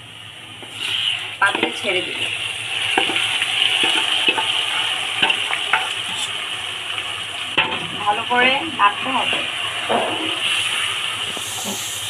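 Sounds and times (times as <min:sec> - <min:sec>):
hot pot sizzling: 0:00.0 - 0:12.0
metal spoon knocking on pans: 0:05.2 - 0:05.9.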